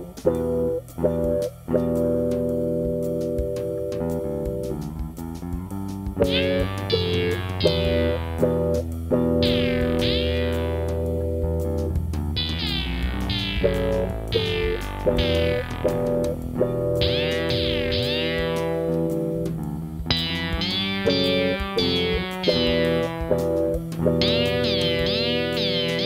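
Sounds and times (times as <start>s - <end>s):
ambient synthesizer music: 6.1s - 26.0s.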